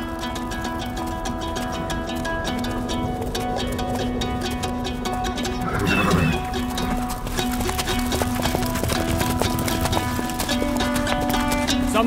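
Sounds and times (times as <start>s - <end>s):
hooves clopping on turf: 0.0s - 12.0s.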